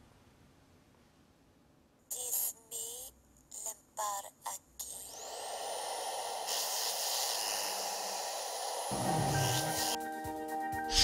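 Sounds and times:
steady noise hiss: 0.0s - 11.0s.

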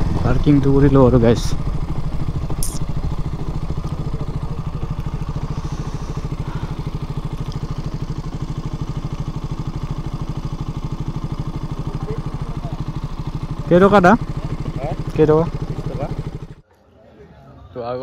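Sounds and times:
motorcycle engine idling: 0.0s - 16.6s.

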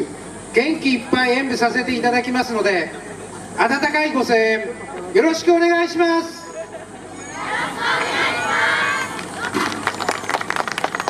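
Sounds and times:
group of voices shouting: 7.2s - 9.2s.

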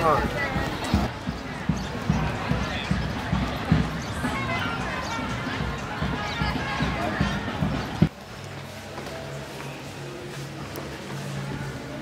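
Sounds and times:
footsteps walking briskly: 0.0s - 11.7s.

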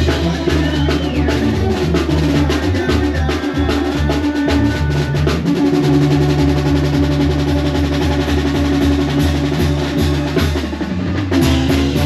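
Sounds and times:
live band music: 0.0s - 12.0s.

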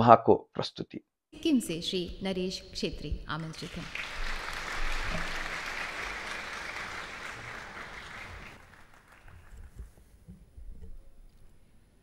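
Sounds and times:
audience applauding: 3.3s - 10.1s.

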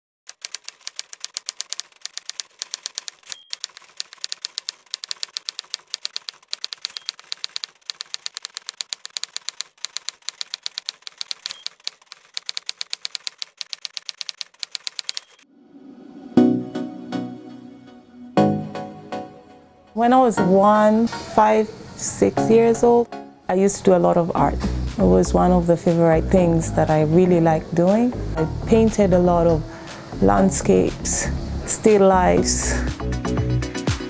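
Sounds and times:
typewriter keys striking: 0.3s - 15.4s.

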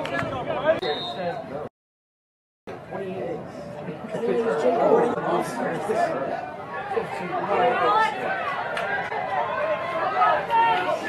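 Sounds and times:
chatter of voices: 2.7s - 11.0s.

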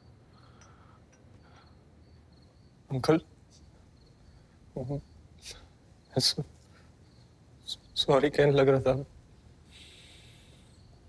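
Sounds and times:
faint breath: 0.2s - 2.0s, 9.7s - 10.9s.

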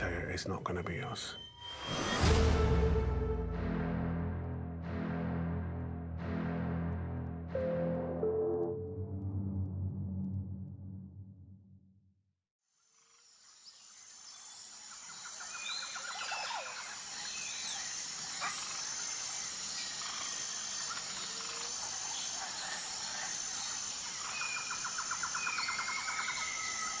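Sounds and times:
birds chirping: 0.0s - 2.2s
bird trill: 0.0s - 2.4s.

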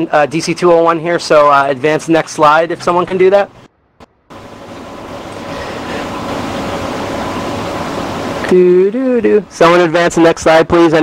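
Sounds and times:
faint hum: 3.5s - 9.9s
steady background hiss: 4.3s - 11.0s.

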